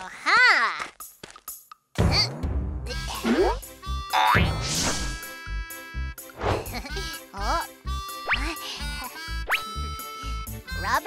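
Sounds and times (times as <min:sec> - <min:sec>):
light background music: 0:00.1 - 0:11.0
cartoon boing: 0:04.1 - 0:04.6.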